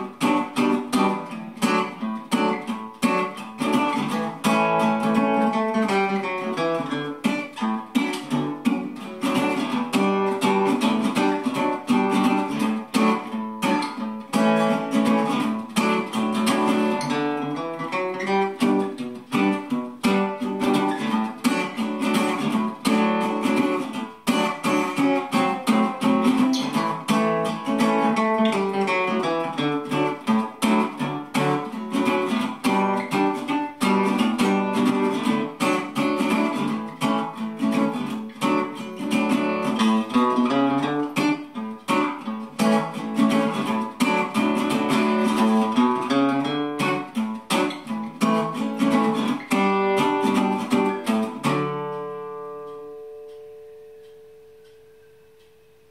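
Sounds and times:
fingerpicked resonator guitar: 0.0 - 55.9.

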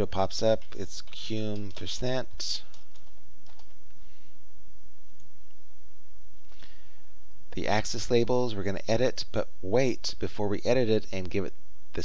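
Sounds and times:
steady low hum: 0.0 - 12.0
computer keyboard keystrokes: 0.6 - 1.9, 2.7 - 3.8.

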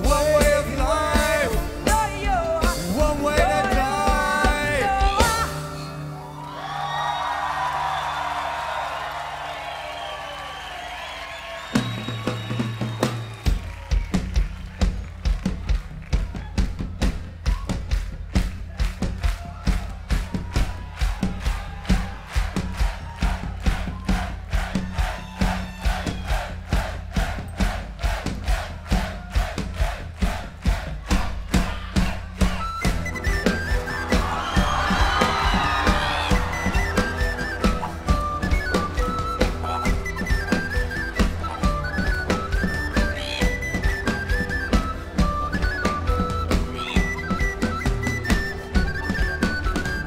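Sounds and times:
steady drum beat: 0.0 - 5.9, 11.7 - 50.0
live folk band: 0.0 - 6.3, 31.6 - 50.0
crowd cheering: 3.6 - 50.0.

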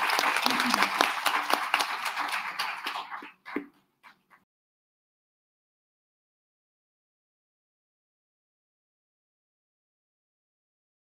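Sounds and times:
audience applauding: 0.0 - 4.2.

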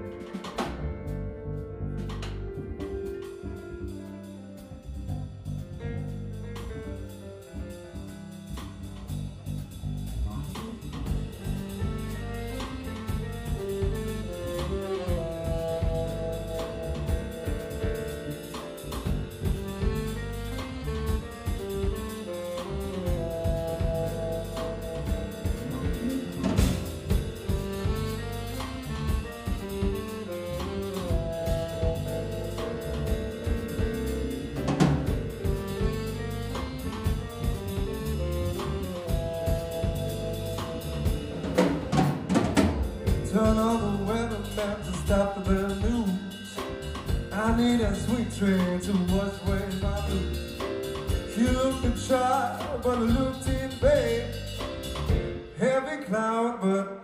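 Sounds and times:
live jazz band: 0.0 - 56.0.

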